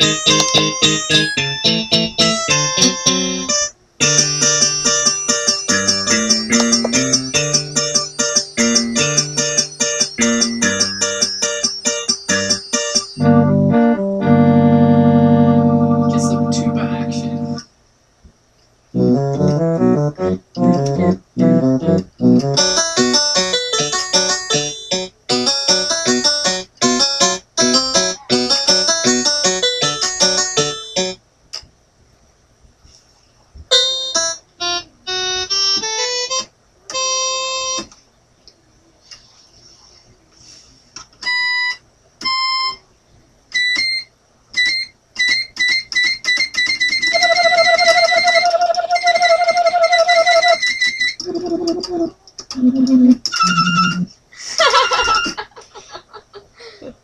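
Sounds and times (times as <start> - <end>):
electronic keyboard notes: 0.0 - 17.6, 19.0 - 31.2, 33.7 - 37.9, 43.5 - 51.4.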